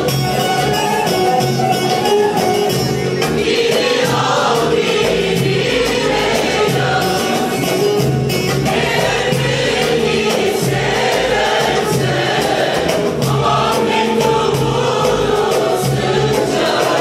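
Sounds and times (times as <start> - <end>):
mixed choir singing folk song: 0.0 - 17.0
plucked lutes and guitars: 0.0 - 17.0
steady beat: 0.0 - 17.0.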